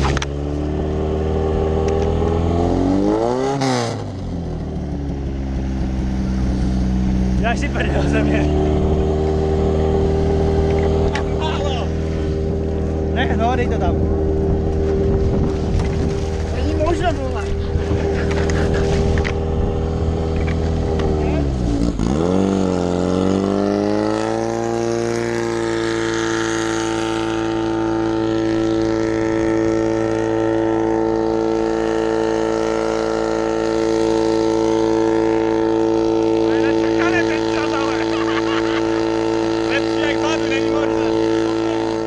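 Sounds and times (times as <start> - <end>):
pump engine running at high revs: 0.0 - 42.0.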